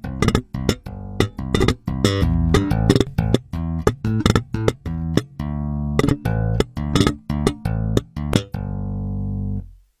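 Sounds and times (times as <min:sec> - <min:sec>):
electric bass guitar notes: 0:00.0 - 0:09.8.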